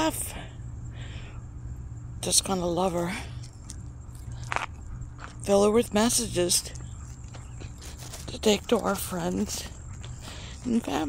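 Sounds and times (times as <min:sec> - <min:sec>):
low steady rumble: 0:00.0 - 0:11.0
dog crunching food: 0:03.3 - 0:05.4, 0:06.7 - 0:10.9.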